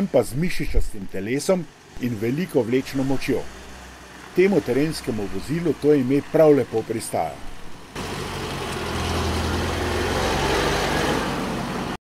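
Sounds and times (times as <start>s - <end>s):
truck engine driving past: 0.0s - 12.0s.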